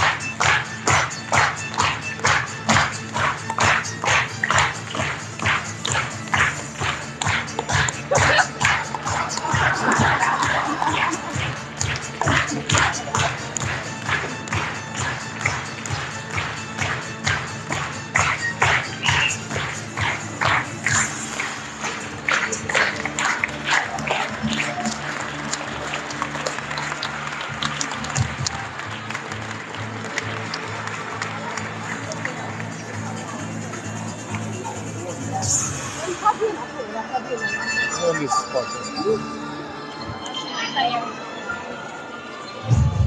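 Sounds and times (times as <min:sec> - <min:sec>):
audience clapping in unison: 0:00.0 - 0:35.0
murmur of crowd: 0:00.0 - 0:43.0
music over sound system: 0:00.0 - 0:43.0.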